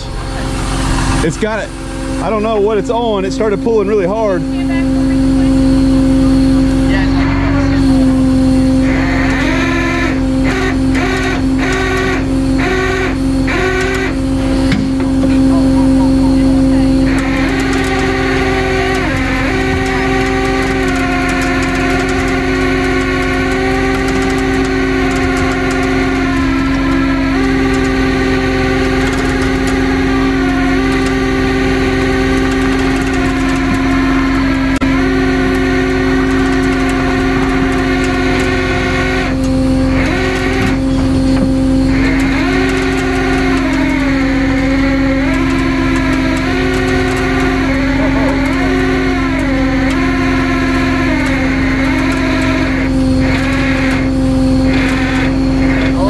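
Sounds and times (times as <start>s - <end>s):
hydraulic winch running: 0.0s - 56.0s
truck engine under load: 0.0s - 56.0s.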